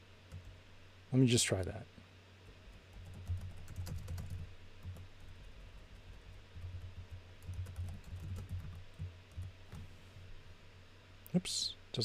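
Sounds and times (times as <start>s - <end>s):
typing on a computer keyboard: 2.7s - 9.8s.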